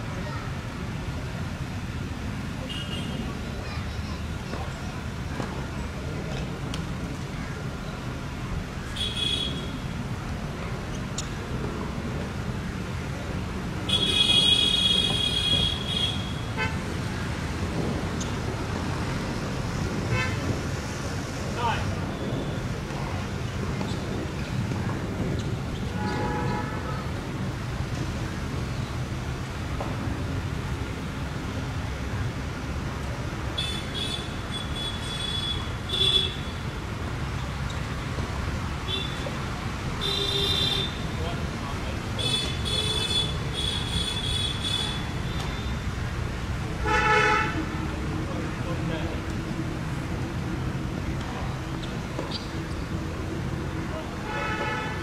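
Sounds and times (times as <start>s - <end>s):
traffic rumble: 0.0s - 55.0s
vehicle horn honks: 26.0s - 27.0s, 46.8s - 47.6s.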